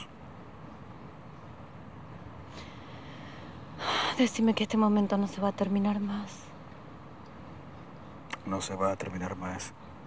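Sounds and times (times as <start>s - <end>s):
low background hiss: 0.0s - 10.0s
woman speaking: 4.1s - 6.5s.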